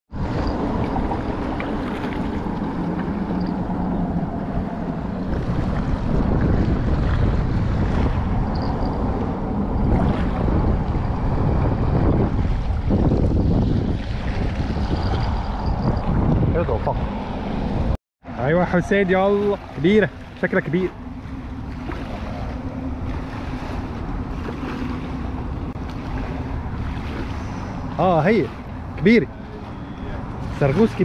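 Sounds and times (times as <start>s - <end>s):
small waves lapping shore: 0.1s - 15.8s, 18.4s - 31.0s
wind buffeting microphone: 0.1s - 18.0s, 18.6s - 31.0s.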